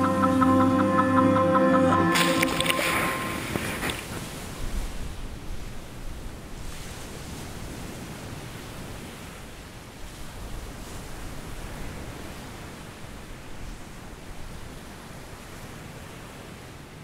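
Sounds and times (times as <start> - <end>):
ocean surf washing up beach: 0.0 - 16.6.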